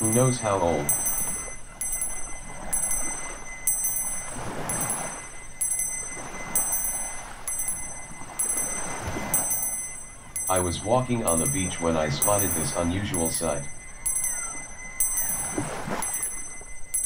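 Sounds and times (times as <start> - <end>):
hand bell ringing: 0.0 - 17.0
ocean surf washing: 0.0 - 17.0.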